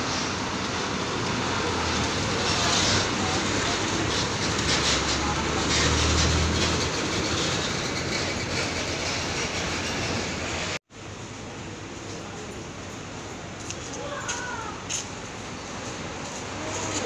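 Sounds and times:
diesel engine rumbling: 0.0 - 17.0.

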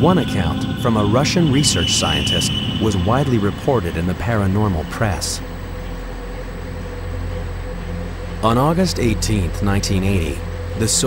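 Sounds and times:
faint steady whine: 0.0 - 11.0
ship engine drone: 0.0 - 11.0.

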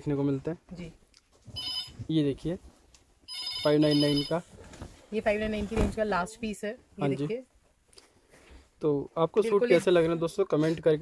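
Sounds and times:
electronic phone ringing: 1.6 - 2.0, 3.3 - 4.4.

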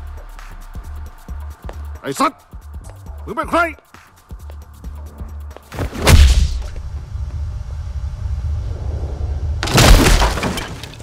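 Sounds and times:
low droning score: 6.3 - 10.3
loud crash: 8.7 - 11.0.

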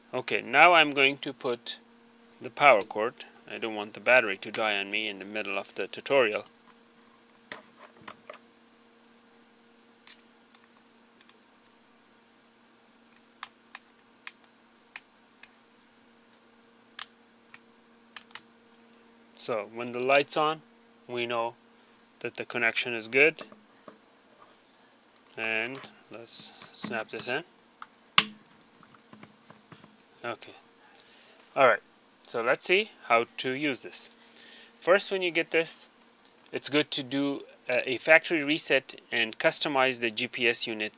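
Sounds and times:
faint steady hum: 0.0 - 40.9.

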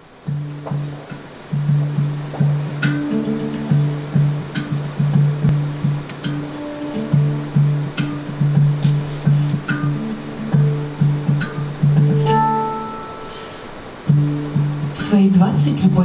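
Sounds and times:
handpan low note rhythm: 0.0 - 16.0
sharp taps on handpan: 0.3 - 13.4
handpan higher ringing notes: 0.3 - 15.0.

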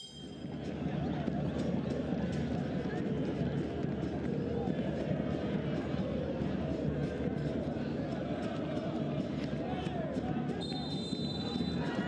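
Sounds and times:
referee's whistle long blast: 0.0 - 0.4
stadium crowd noise: 0.0 - 12.0.

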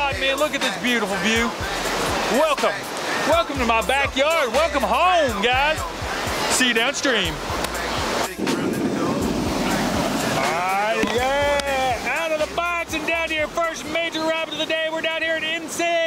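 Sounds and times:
rushing whitewater: 0.0 - 16.0
wind buffeting microphone: 7.4 - 11.8
person calling out wordless sounds: 10.3 - 12.6.

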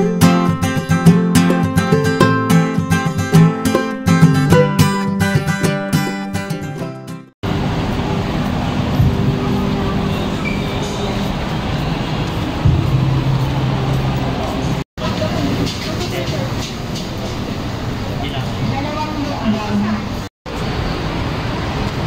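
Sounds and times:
steady noisy rumble: 7.4 - 22.0
indistinct voices of passers-by: 8.3 - 16.5.

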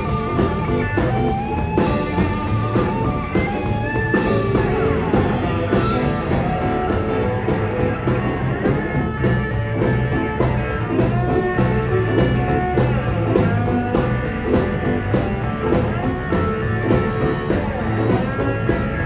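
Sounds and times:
drum kit beat: 0.0 - 19.0
electric bass: 0.0 - 19.0
electric guitars: 0.0 - 19.0.

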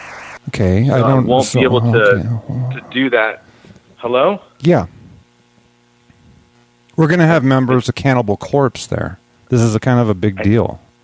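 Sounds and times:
electrical hum on telephone line: 0.0 - 11.0
people talking: 0.5 - 3.4, 4.0 - 4.9, 7.0 - 10.8.

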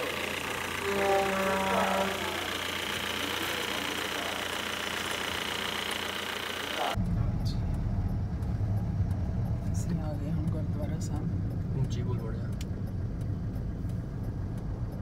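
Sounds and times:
steady hum: 0.0 - 11.6
car engine and road noise: 0.0 - 15.0.

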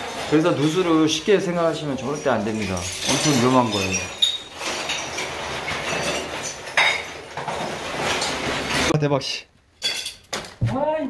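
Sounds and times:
broken ceiling material clattering: 0.0 - 9.0.

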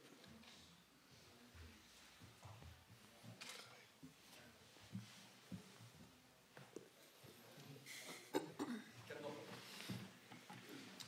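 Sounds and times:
person coughing: 8.2 - 8.9.

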